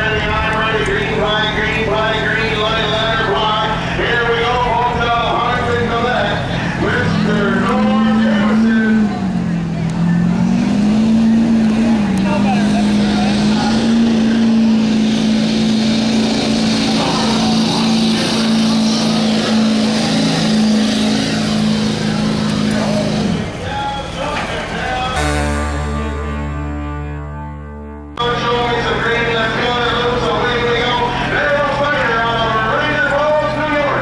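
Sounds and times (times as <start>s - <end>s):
truck engine revving hard: 0.0s - 34.0s.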